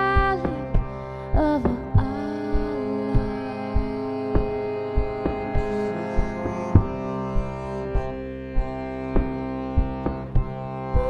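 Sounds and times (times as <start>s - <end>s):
accordion chords: 0.0s - 11.0s
percussion hits: 1.6s - 10.5s.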